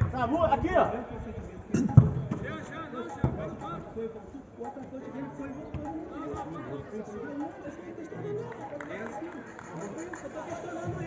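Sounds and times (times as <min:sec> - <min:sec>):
players calling: 0:01.7 - 0:11.0.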